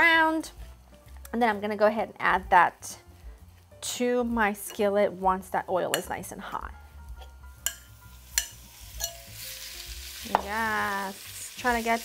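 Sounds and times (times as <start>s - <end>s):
chicken sizzling in hot oil: 7.4s - 12.0s
utensil clinking on ceramic bowl: 7.6s - 9.3s.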